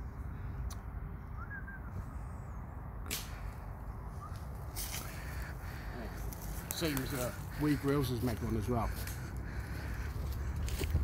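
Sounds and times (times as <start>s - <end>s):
low outdoor rumble: 0.0s - 11.0s.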